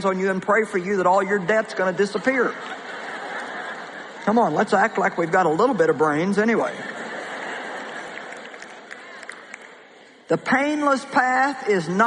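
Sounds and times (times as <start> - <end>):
audience laughing: 1.2 - 9.7.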